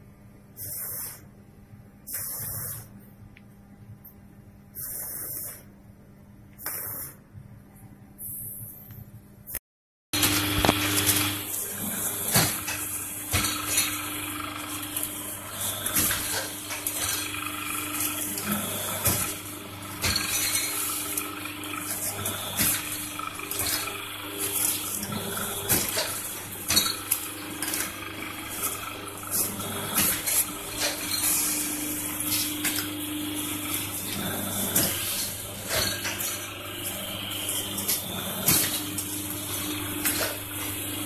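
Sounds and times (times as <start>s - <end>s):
machine humming: 10.2s - 41.0s.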